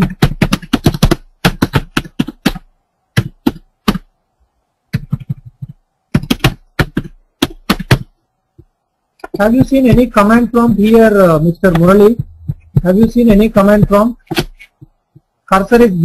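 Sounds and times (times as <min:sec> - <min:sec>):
typing on computer keyboard: 0:00.0 - 0:04.1, 0:04.9 - 0:08.1.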